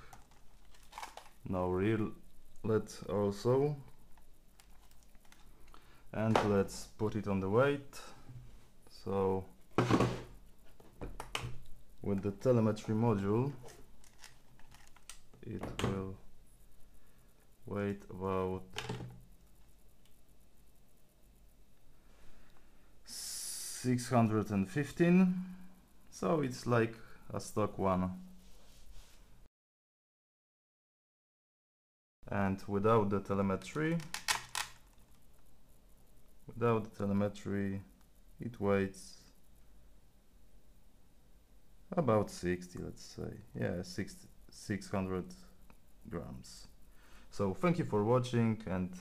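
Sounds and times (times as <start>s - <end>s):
plastic clicks: 0.1s - 1.4s, 13.6s - 15.8s, 34.0s - 35.2s
faint handling: 9.8s - 16.2s.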